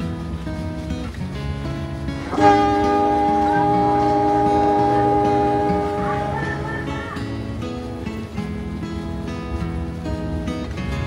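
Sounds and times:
train horn blast: 2.2s - 7.2s.

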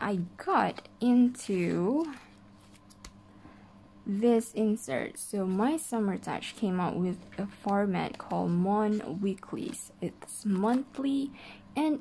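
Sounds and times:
paper pages turning: 0.7s - 3.2s, 6.4s - 11.2s.

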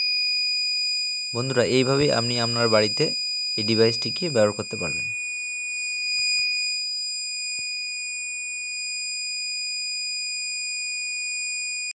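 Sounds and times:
high-pitched alarm buzzer: 0.0s - 8.2s.

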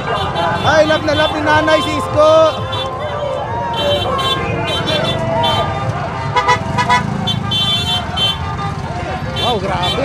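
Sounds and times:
crowd shouting and cheering: 0.0s - 9.4s
truck engine rumble: 0.0s - 10.0s
vehicle horn toots: 0.0s - 10.0s.

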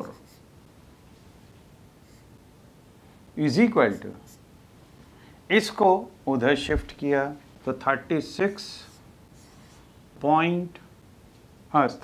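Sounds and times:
marker pen scratching on whiteboard: 0.0s - 0.4s.

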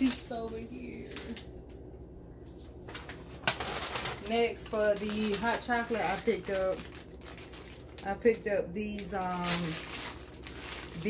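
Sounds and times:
paper bag rustling and crinkling: 0.0s - 1.4s, 2.5s - 11.0s.

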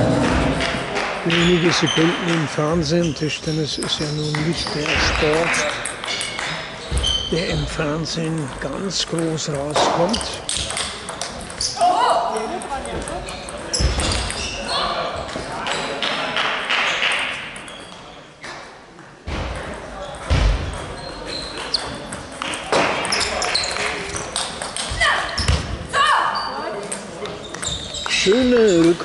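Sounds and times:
voices and shouts in hall: 11.6s - 17.5s, 22.8s - 29.0s.

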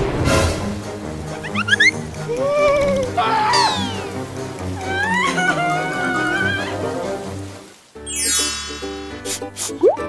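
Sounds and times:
background music: 0.0s - 10.0s
wavering cry-like vocal sound: 4.8s - 6.9s.

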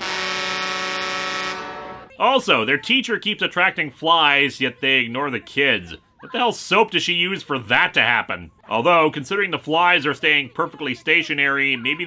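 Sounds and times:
boat horn blast: 0.0s - 2.1s.

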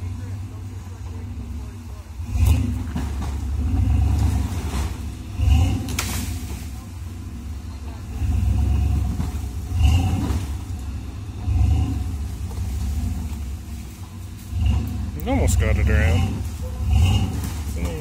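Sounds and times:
engine revving in surges: 0.0s - 18.0s.

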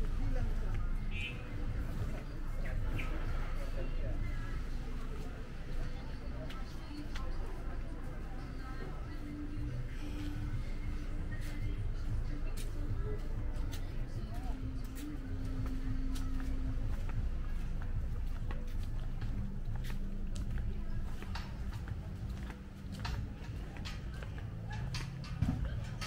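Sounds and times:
faint distant voices: 0.0s - 26.0s
footsteps clicking on paving: 13.6s - 26.0s.

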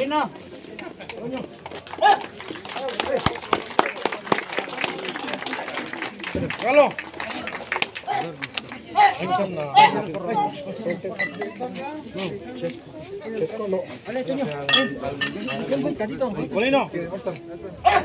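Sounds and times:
crowd clapping: 0.8s - 10.2s
voices calling out: 1.8s - 12.0s.

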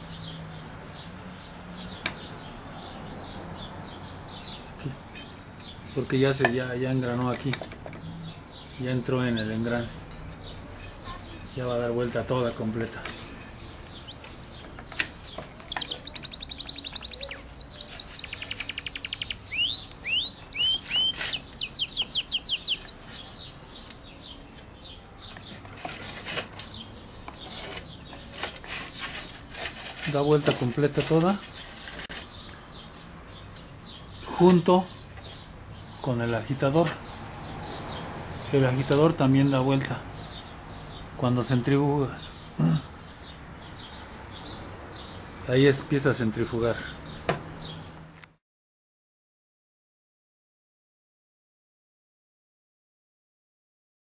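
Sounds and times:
small birds chirping: 0.0s - 48.2s
songbird trilling: 7.4s - 25.5s.

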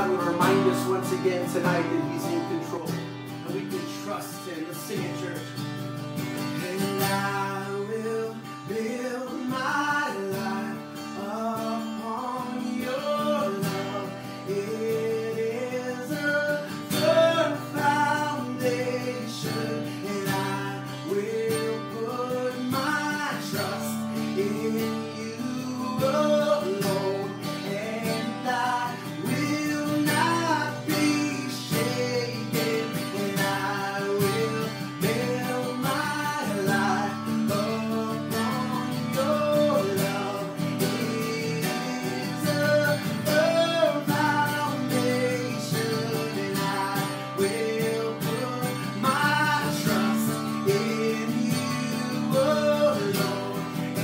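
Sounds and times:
man singing: 0.0s - 5.6s, 6.2s - 54.0s
strummed acoustic guitar: 0.0s - 54.0s.

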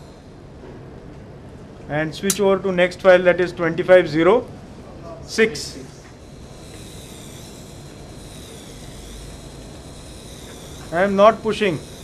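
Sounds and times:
dental handpiece high whine: 0.0s - 0.4s, 5.4s - 12.0s.

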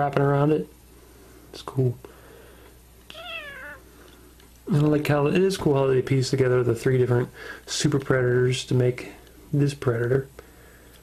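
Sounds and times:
cat meowing: 3.1s - 3.9s.

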